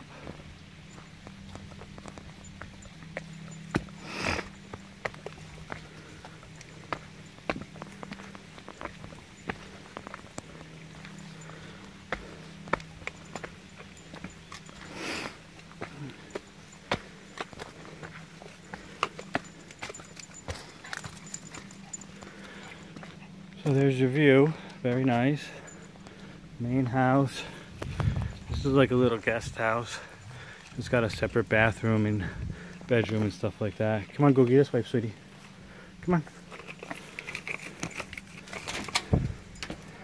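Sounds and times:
footsteps on stone steps: 0.0s - 34.6s, 35.2s - 40.0s
light metallic jangling: 0.0s - 35.3s, 36.0s - 40.0s.

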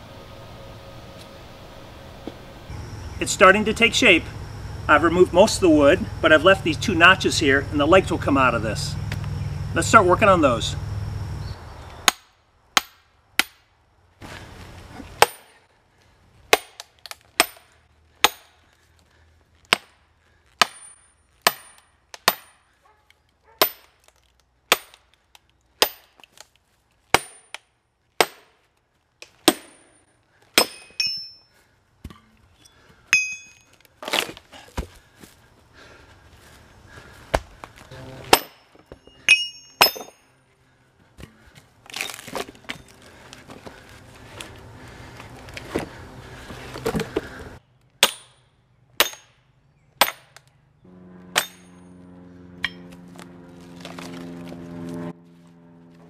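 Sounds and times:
hammer striking steel wedge: 12.1s - 13.6s, 16.5s - 18.6s, 20.6s - 22.6s, 27.1s - 27.6s, 28.2s - 28.5s, 30.6s - 31.4s, 38.0s - 40.2s, 48.0s - 48.4s, 49.0s - 49.4s, 50.0s - 50.4s, 51.3s - 51.8s.

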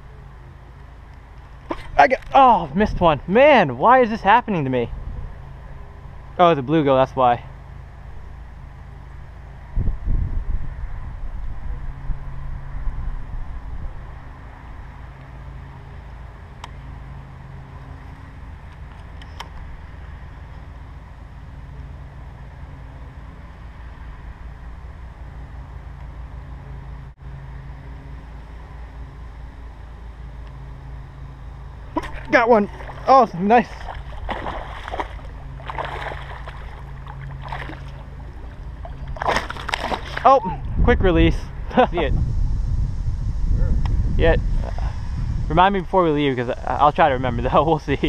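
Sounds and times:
faint engine-like hum: 0.0s - 48.0s
wind rumbling on microphone: 1.7s - 6.4s, 9.1s - 15.8s, 31.8s - 48.0s.

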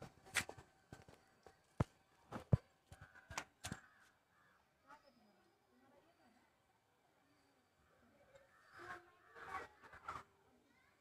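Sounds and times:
soft footsteps: 0.0s - 3.8s.

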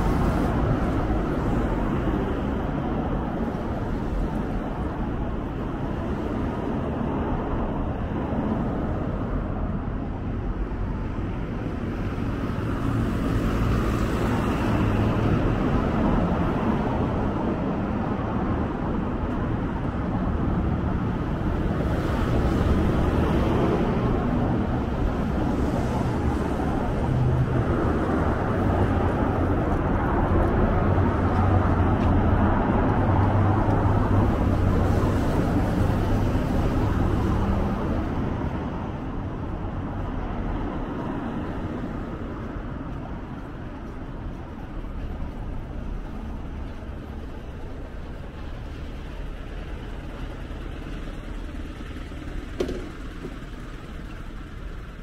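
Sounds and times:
city street traffic rumble: 0.0s - 55.0s.

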